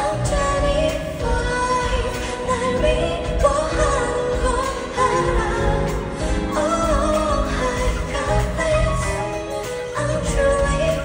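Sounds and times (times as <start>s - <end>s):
keyboard: 0.0s - 11.0s
woman singing into microphone: 0.0s - 11.0s.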